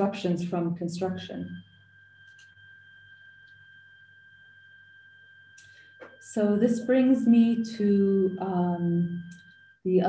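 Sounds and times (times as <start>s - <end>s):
high-pitched whine: 0.0s - 10.0s
low hum: 0.0s - 10.0s.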